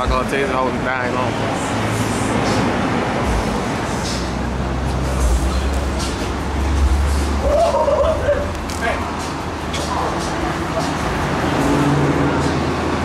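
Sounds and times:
car engine rumbling: 0.0 - 13.0
traffic noise: 0.0 - 13.0.

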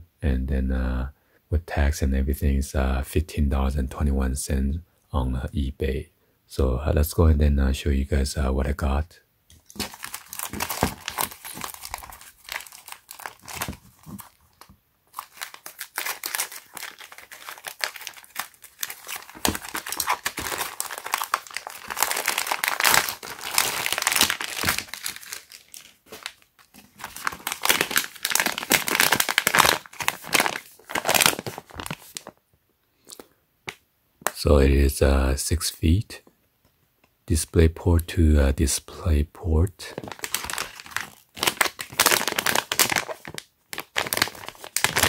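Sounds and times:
plastic mailer bag crinkling and tearing: 9.6 - 32.4, 39.9 - 45.0.

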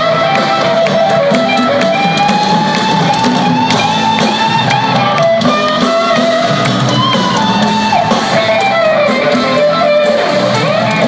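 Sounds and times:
lead electric guitar: 0.0 - 11.0
live rock band: 0.0 - 11.0.

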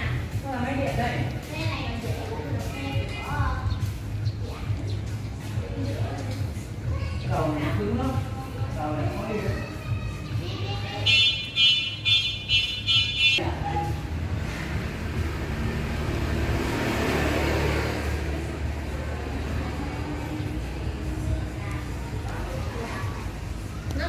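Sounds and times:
low traffic rumble: 0.0 - 24.0.

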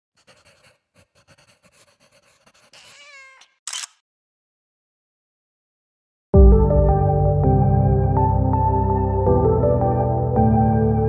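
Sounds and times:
cat meowing: 2.8 - 3.6.

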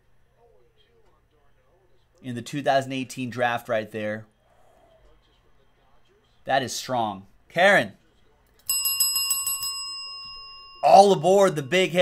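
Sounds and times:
bell ringing: 8.6 - 12.0.

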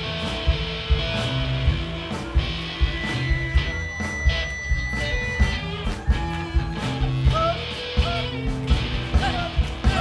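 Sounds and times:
bass guitar: 0.0 - 10.0
distorted electric guitars: 0.0 - 10.0
drums hitting: 0.0 - 10.0.

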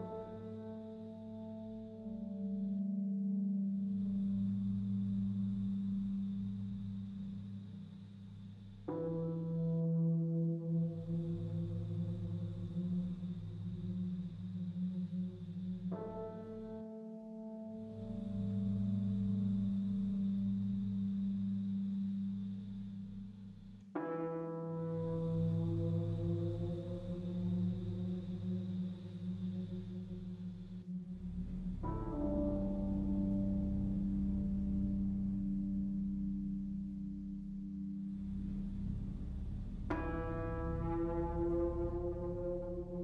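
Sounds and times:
sustained low drone: 0.0 - 43.0
low electronic drone: 24.8 - 43.0.

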